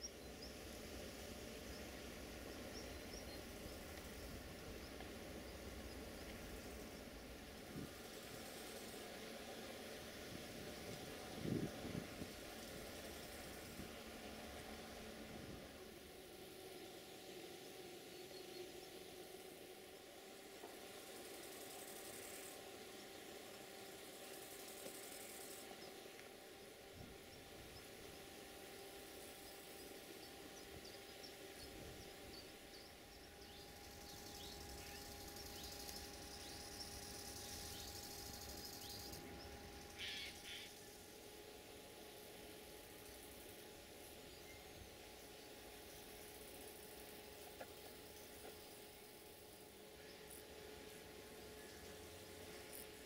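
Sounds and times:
steady low hum: 0:00.0 - 0:53.0.

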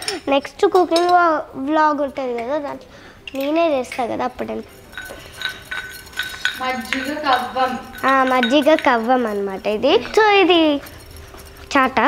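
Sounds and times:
girl speaking: 0:00.0 - 0:04.7, 0:06.6 - 0:11.0, 0:11.7 - 0:12.0
toy kitchenware clinking: 0:03.3 - 0:12.0.

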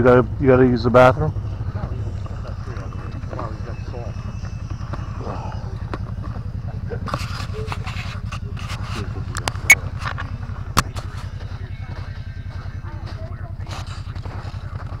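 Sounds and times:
engine idling: 0:00.0 - 0:15.0.

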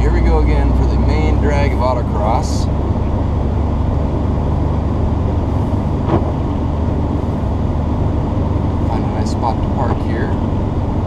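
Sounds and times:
car engine drone and road noise: 0:00.0 - 0:11.0.

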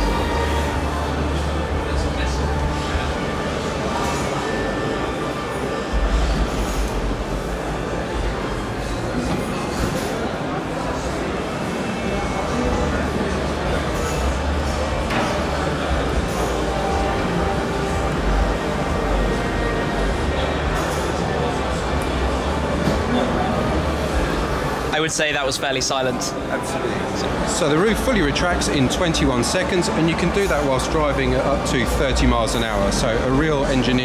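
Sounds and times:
music: 0:00.0 - 0:07.6, 0:12.4 - 0:24.8
crowd chatter: 0:00.0 - 0:34.0.

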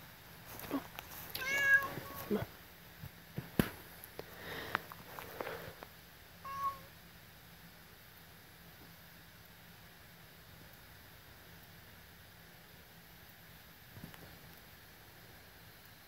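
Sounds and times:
dry leaves crackling underfoot: 0:00.4 - 0:02.5
cat meowing: 0:00.7 - 0:02.5, 0:06.4 - 0:06.9.

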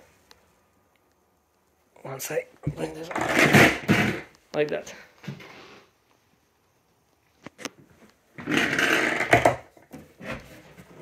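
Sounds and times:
table leg scraping: 0:02.7 - 0:04.3, 0:08.4 - 0:11.0.

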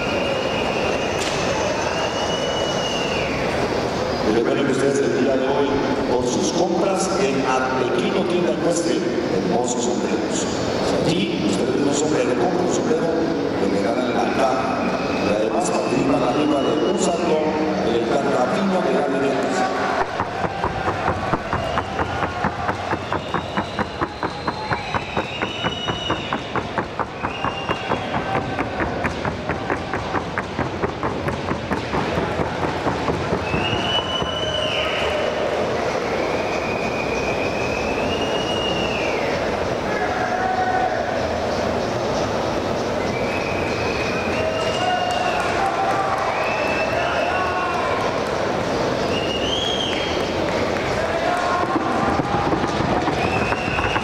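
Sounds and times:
crowd hum: 0:00.0 - 0:54.0
voices: 0:00.0 - 0:54.0
horse hooves trotting: 0:20.0 - 0:34.4.

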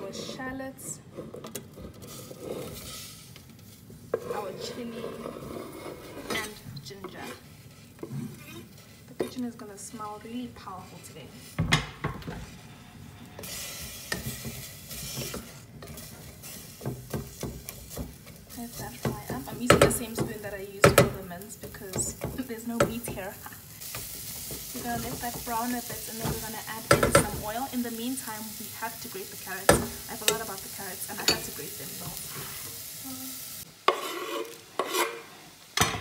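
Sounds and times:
vegetables sizzling in a pot: 0:00.0 - 0:36.0
wooden spoon knocking pot: 0:19.0 - 0:21.2, 0:26.2 - 0:27.5
spatula scraping wooden board: 0:33.9 - 0:35.4.

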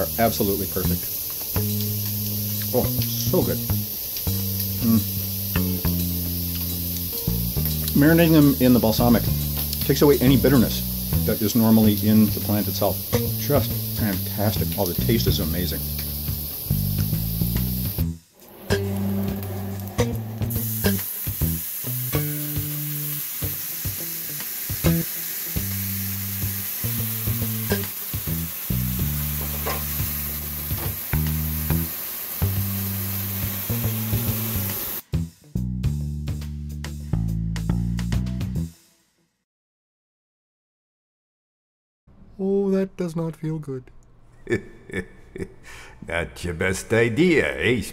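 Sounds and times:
background music with bass line: 0:00.0 - 0:22.9, 0:24.8 - 0:38.9
mushrooms sizzling in a skillet: 0:00.0 - 0:35.0.

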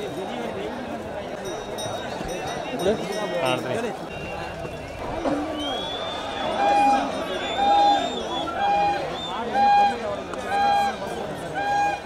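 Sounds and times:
outdoor crowd noise: 0:00.0 - 0:12.0.

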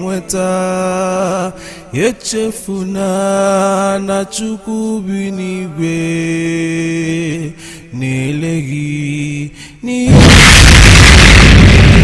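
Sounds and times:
loud rushing boom: 0:10.1 - 0:12.0.

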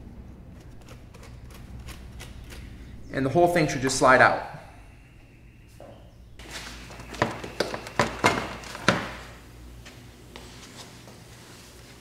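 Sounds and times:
rubber duct rubbing and rustling: 0:00.0 - 0:03.2.

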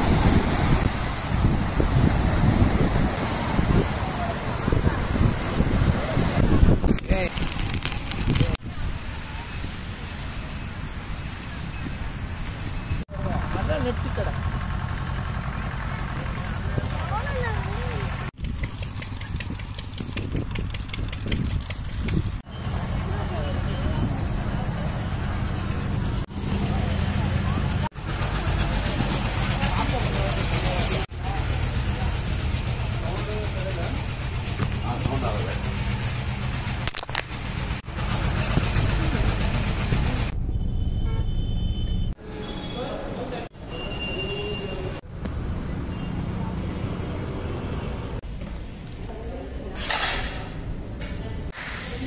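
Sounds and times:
traffic noise: 0:00.0 - 0:52.0.

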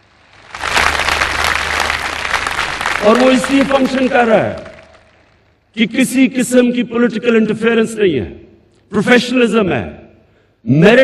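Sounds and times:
large audience applauding: 0:00.0 - 0:05.6.

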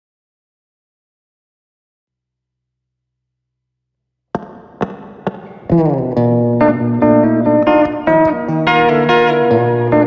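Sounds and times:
electric guitar strums: 0:04.3 - 0:10.0.

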